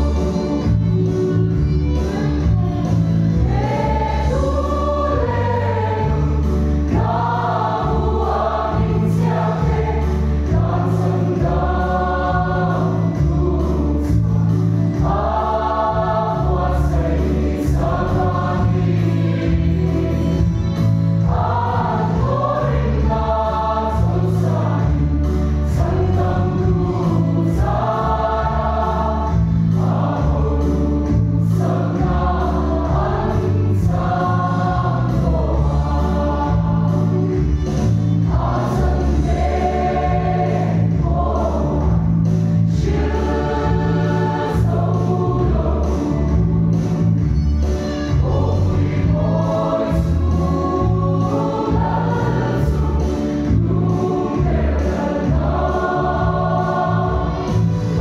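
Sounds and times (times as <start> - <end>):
choir singing a hymn: 0.0 - 58.0.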